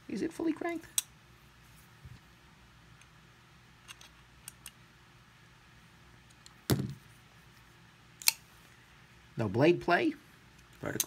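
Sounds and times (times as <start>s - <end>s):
loud knock: 6.7s - 7.0s.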